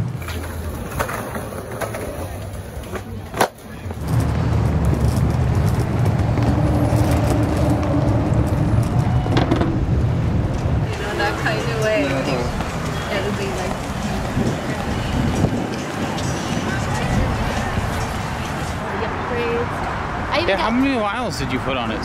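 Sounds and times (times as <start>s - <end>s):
skateboard clack: 0.0s - 7.8s
skateboard rolling over paving: 0.0s - 12.7s
steady low rumble: 3.9s - 12.8s
voices: 10.8s - 22.0s.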